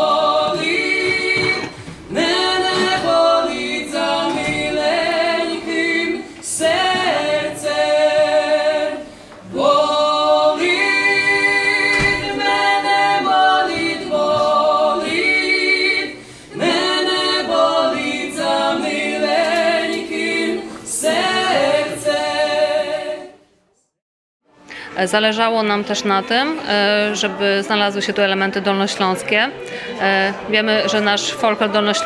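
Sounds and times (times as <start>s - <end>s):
folk trio singing unaccompanied: 0.0s - 23.4s.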